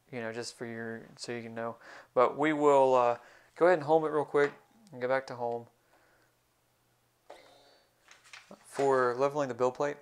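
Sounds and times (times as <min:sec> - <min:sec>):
faint hiss: 0:00.1 - 0:06.6.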